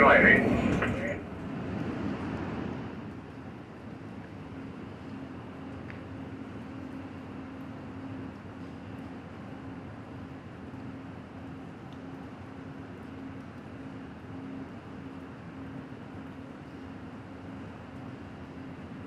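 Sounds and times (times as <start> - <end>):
low hum: 0.0 - 19.0
train wheels rumbling on rails: 0.0 - 19.0.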